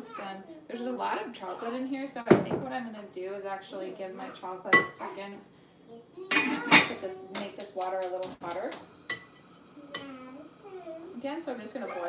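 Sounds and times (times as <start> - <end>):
metal pot clinking: 6.3 - 10.2.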